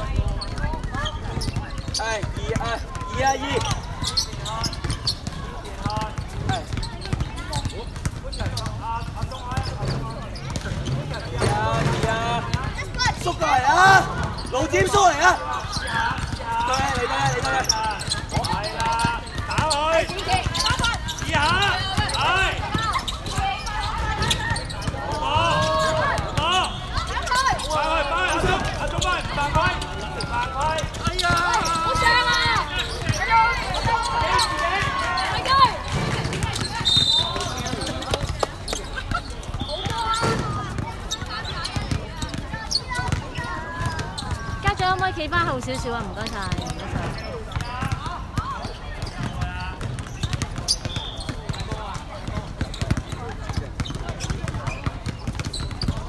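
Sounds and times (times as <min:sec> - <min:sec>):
basketball bouncing: 0:00.0 - 0:56.0
voices calling out: 0:00.0 - 0:56.0.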